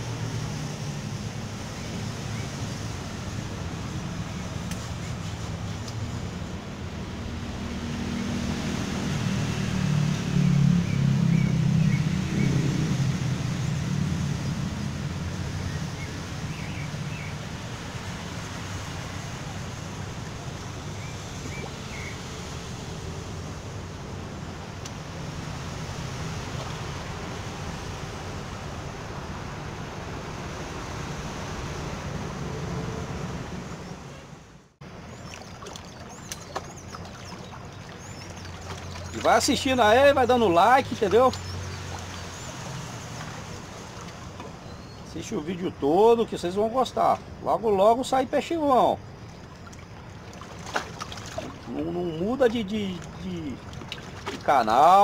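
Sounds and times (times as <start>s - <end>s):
sea waves washing on shore: 0.0s - 34.1s, 34.8s - 55.0s.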